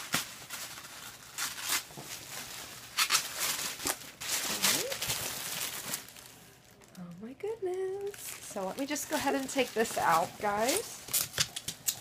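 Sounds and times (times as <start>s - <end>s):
tissue paper rustling: 0.0s - 6.7s, 8.0s - 11.4s.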